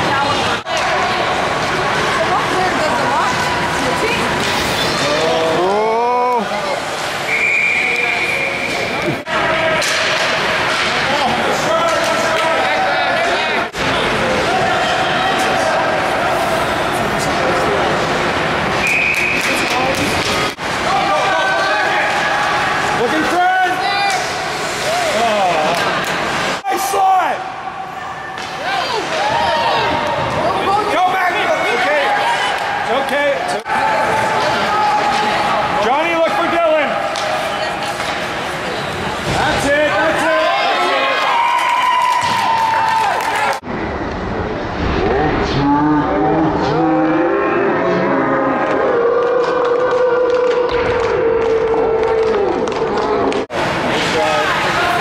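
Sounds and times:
spectators shouting and cheering: 0.0 - 45.4, 46.2 - 55.0
pucks and sticks knocking boards: 9.7 - 12.6.

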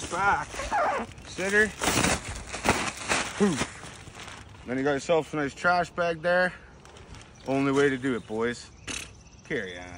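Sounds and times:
plastic bag rustling: 0.0 - 5.2.

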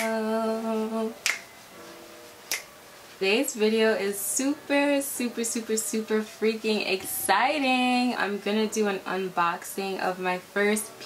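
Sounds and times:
faint background music: 0.0 - 11.0
finger snaps: 1.2 - 1.5, 2.5 - 2.7.

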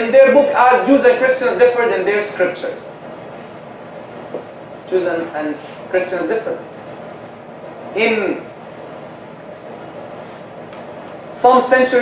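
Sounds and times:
room noise hiss: 0.0 - 12.0
man's voice: 11.4 - 12.0.

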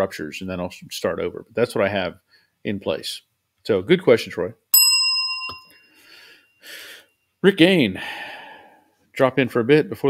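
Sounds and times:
bright bell ding: 4.8 - 6.1.

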